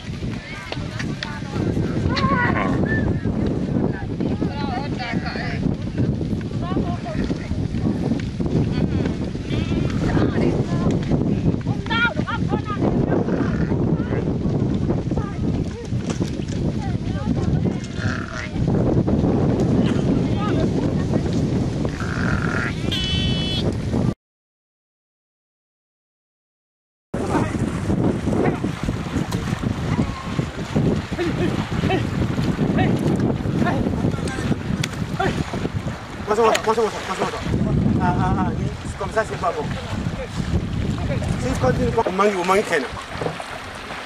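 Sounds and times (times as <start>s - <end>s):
water churning and splashing: 0.0s - 22.8s, 27.2s - 44.0s
wind buffeting microphone: 0.0s - 24.2s, 27.1s - 44.0s
sheep and goats bleating: 9.4s - 10.2s, 22.0s - 23.6s.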